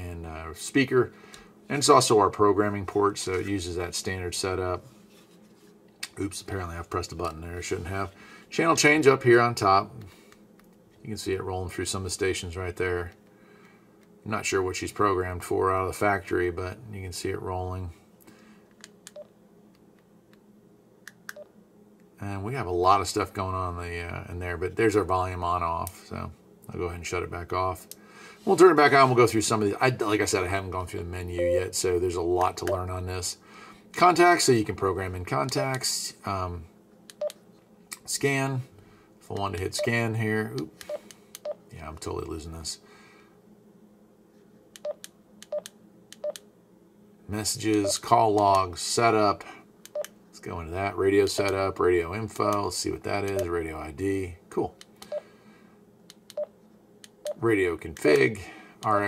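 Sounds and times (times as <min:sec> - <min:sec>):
short radio beeps: 0:31.4 - 0:31.8.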